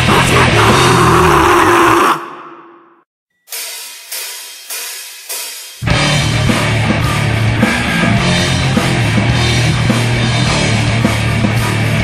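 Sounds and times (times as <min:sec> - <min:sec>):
grindcore band playing: 0:00.0 - 0:01.2, 0:03.5 - 0:12.0.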